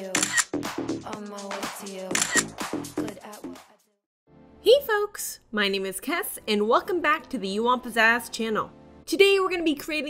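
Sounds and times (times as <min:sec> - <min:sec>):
background music: 0:00.0 - 0:10.0
camera shutter click: 0:00.1 - 0:00.5, 0:02.1 - 0:02.5.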